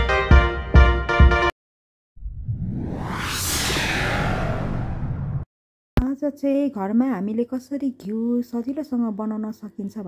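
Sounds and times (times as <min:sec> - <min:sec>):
low rumble: 0:02.2 - 0:05.5
whoosh transition effect: 0:02.2 - 0:05.5.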